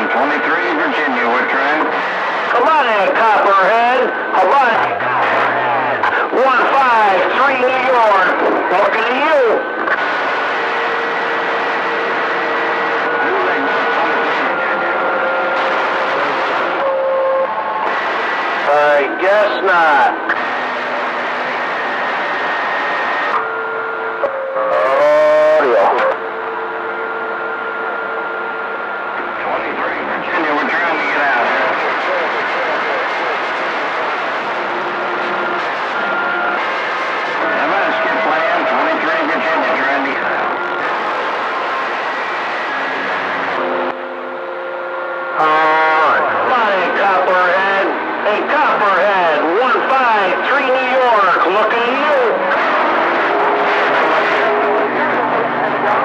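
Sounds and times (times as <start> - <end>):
garbled radio voices: 0.0 - 26.6, 28.6 - 44.3, 44.9 - 56.0
radio static hiss: 0.0 - 56.0.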